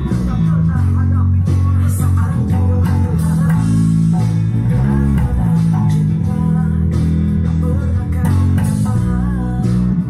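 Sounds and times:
electric bass fingerstyle: 0:00.0 - 0:10.0
pop backing track: 0:00.0 - 0:10.0.

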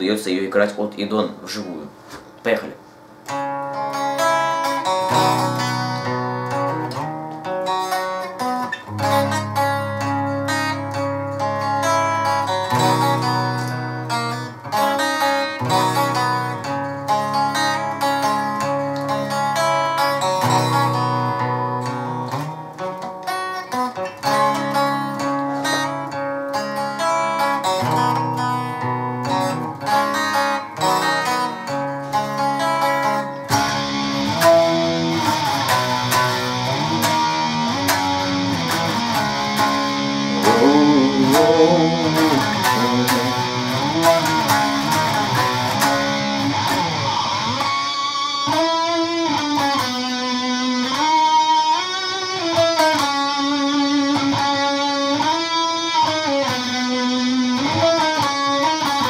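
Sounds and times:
clean electric guitar arpeggio: 0:33.2 - 0:59.0.

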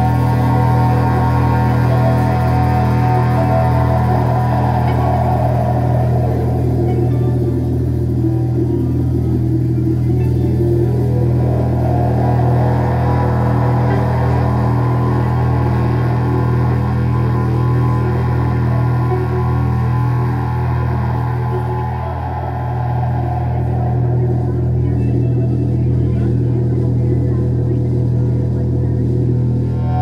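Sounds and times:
deep bass note: 0:00.0 - 0:30.0.

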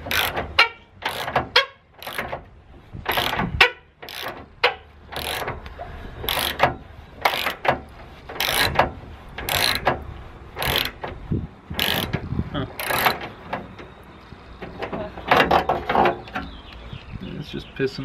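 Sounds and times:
ratchet wrench clicking: 0:00.0 - 0:02.4, 0:03.1 - 0:03.4, 0:04.0 - 0:10.0, 0:10.6 - 0:11.1, 0:11.8 - 0:12.2, 0:12.8 - 0:13.3.

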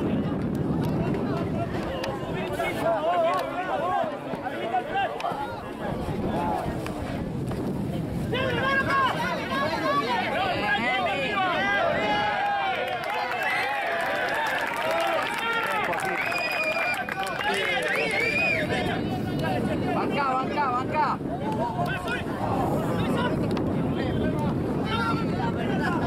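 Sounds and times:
crowd shouting and calling: 0:00.0 - 0:07.3, 0:07.9 - 0:26.0.

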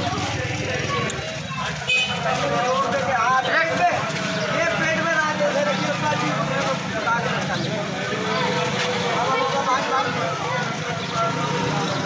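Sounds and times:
men talking and calling out: 0:00.0 - 0:12.0.

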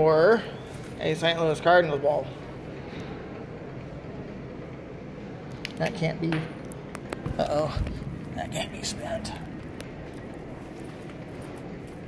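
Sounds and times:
faint hum: 0:00.0 - 0:12.0
low rumbling background noise: 0:00.0 - 0:12.0.

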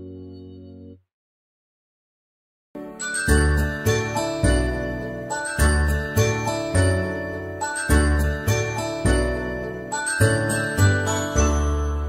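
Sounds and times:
cartoon music with chimes and bass: 0:00.0 - 0:01.0, 0:02.8 - 0:12.0.

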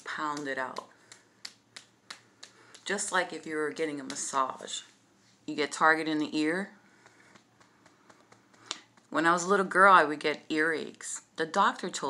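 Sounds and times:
fist slapping bare skin: 0:00.2 - 0:03.2, 0:07.0 - 0:09.1.

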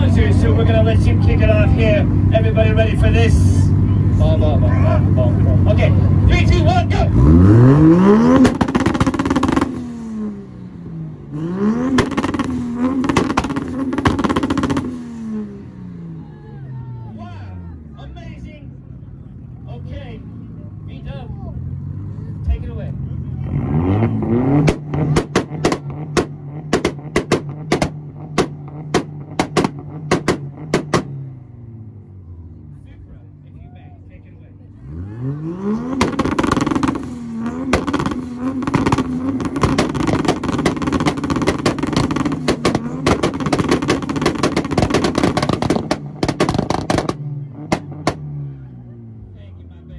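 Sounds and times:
car engines revving hard: 0:00.0 - 0:16.3, 0:17.1 - 0:33.5, 0:34.4 - 0:49.9
engine pops and bangs: 0:08.4 - 0:09.8, 0:11.9 - 0:15.0, 0:24.6 - 0:31.2, 0:35.9 - 0:48.3.

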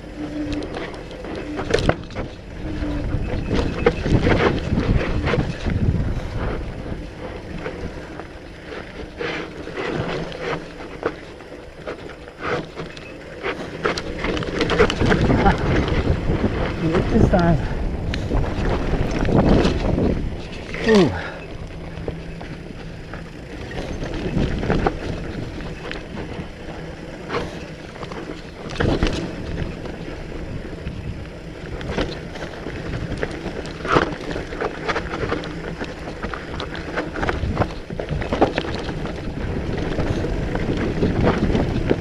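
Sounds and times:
bike knocking and rattling: 0:00.0 - 0:42.0
wind and tyre noise: 0:00.0 - 0:42.0.

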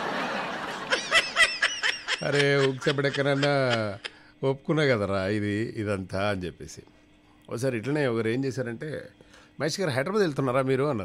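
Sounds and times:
person laughing: 0:00.6 - 0:04.2.

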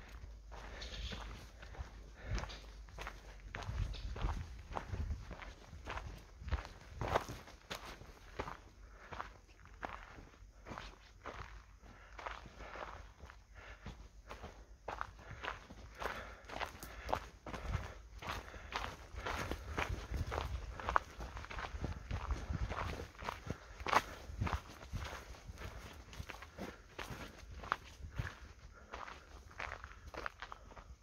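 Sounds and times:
footsteps on dirt path: 0:00.0 - 0:31.0.

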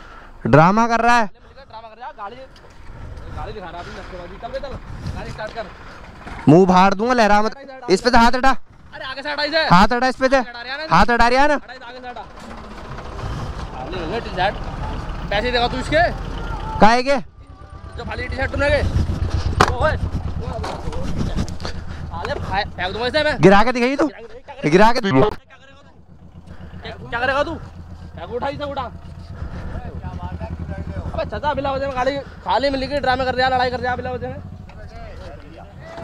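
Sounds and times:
low steady rumble: 0:01.2 - 0:36.0
men talking at a distance: 0:13.6 - 0:36.0.

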